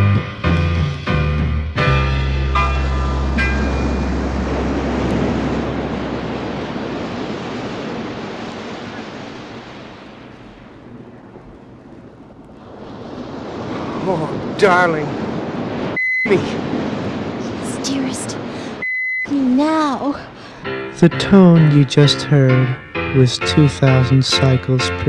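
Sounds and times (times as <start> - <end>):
band music: 0.0 - 6.4, 20.7 - 25.0
ocean surf: 0.0 - 25.0.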